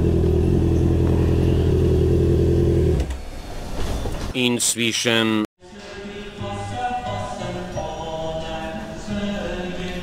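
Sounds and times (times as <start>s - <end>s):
motorcycle engine idling: 0.0s - 3.0s.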